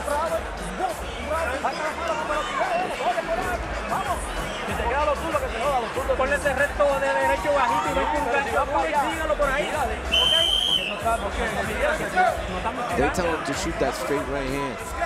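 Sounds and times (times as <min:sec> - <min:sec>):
crowd babble: 0:00.0 - 0:15.0
man giving instructions: 0:04.8 - 0:15.0
high whistle-like tone: 0:10.1 - 0:11.0.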